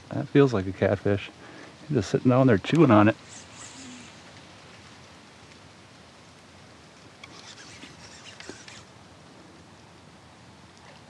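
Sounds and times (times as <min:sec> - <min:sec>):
faint steady hiss: 0:00.0 - 0:11.0
soft ticks and patters: 0:00.0 - 0:11.0.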